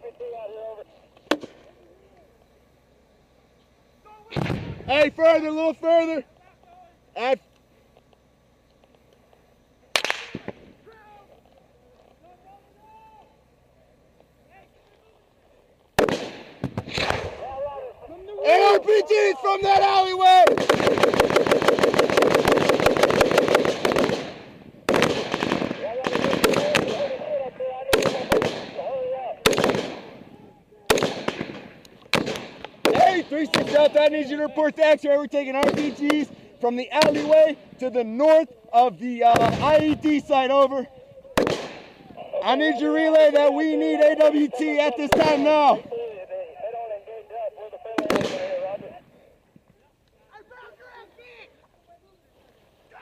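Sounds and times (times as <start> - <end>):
faint men's voices: 0.0 - 16.4, 17.2 - 21.5, 25.4 - 53.0
rifle shots echoing: 1.3 - 1.7, 9.9 - 10.8, 16.0 - 17.7, 20.0 - 38.0, 39.2 - 40.5, 41.3 - 45.9, 48.0 - 48.9
sharp gunshot: 4.3 - 4.9, 10.0 - 10.7, 16.0 - 17.5, 20.4 - 27.2, 27.9 - 28.8, 29.4 - 30.2, 30.9 - 33.9, 35.6 - 36.2, 37.0 - 37.4, 39.3 - 40.0, 41.4 - 42.0, 48.0 - 48.6
men calling out: 17.4 - 20.6, 25.8 - 29.5, 42.0 - 53.0.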